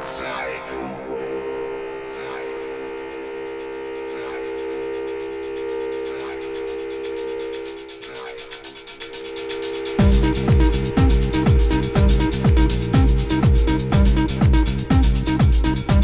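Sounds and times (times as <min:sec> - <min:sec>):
held synth chord: 0:00.0 - 0:08.0, 0:09.2 - 0:16.0
full electronic beat: 0:00.9 - 0:16.0
fast high ticking pattern: 0:01.7 - 0:16.0.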